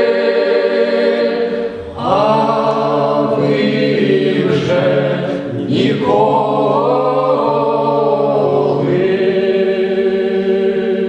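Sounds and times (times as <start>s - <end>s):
men singing in harmony: 0.0s - 11.0s.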